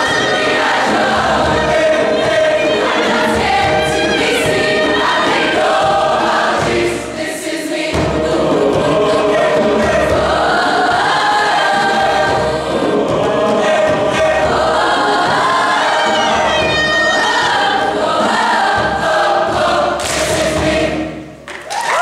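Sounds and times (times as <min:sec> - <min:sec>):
mixed choir singing in harmony: 0:00.0 - 0:21.4.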